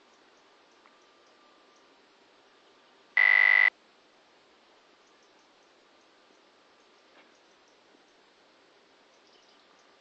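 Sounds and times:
faint outdoor background hiss: 0.0s - 10.0s
loud electronic beep: 3.2s - 3.7s.

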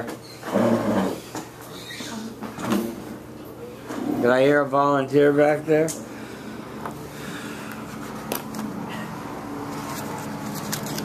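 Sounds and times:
classroom room noise: 0.0s - 9.7s.

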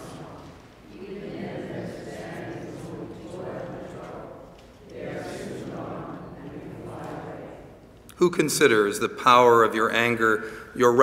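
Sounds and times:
congregation speaking in unison: 0.0s - 11.0s.

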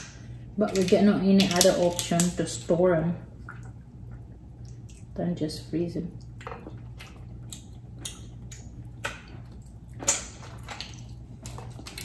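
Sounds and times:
shells cracked and peeled by hand: 0.0s - 2.4s
low steady hum: 0.0s - 12.0s.

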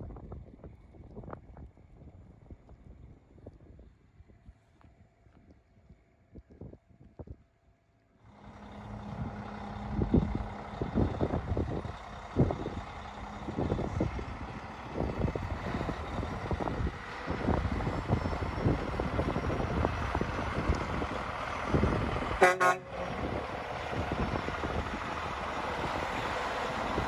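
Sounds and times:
diesel truck engine running: 8.2s - 27.0s.

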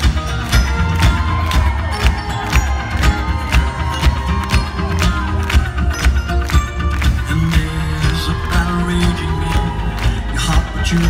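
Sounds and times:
crowd cheering: 0.0s - 11.0s
drums steady beat: 0.0s - 11.0s
live rock band playing: 0.0s - 11.0s.

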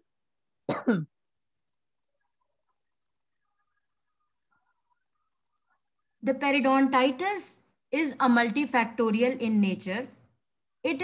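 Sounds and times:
person clearing throat: 0.6s - 1.2s.

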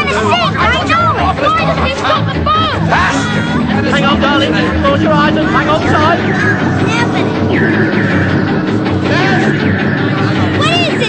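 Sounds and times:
voices shouting and shrieking: 0.0s - 11.0s
low rumble: 2.8s - 11.0s.

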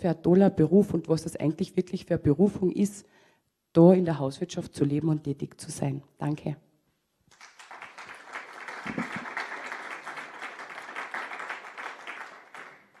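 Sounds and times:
audience applauding: 7.3s - 13.0s.

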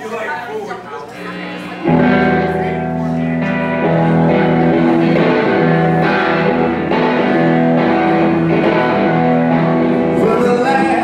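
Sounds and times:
electric guitar chord ringing: 1.2s - 11.0s.

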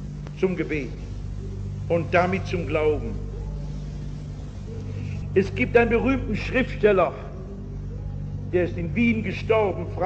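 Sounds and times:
background hiss: 0.0s - 10.0s
low hum: 0.0s - 10.0s.

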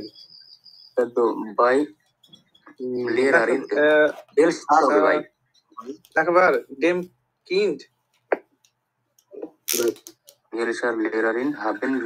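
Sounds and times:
person speaking: 2.6s - 8.5s, 9.2s - 12.0s.

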